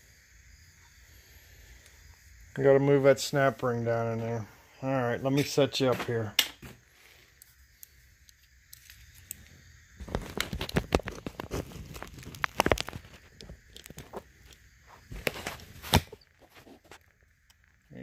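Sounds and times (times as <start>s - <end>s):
rubbing and knocks on microphone: 10.0s - 13.3s.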